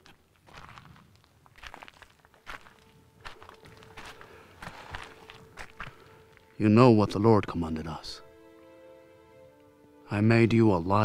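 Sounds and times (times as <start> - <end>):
footsteps crunching on gravel: 0.0 - 6.7.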